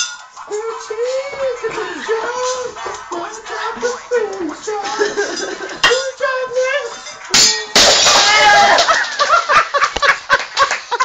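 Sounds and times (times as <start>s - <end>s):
crash with ringing clangs: 7.3s - 8.7s.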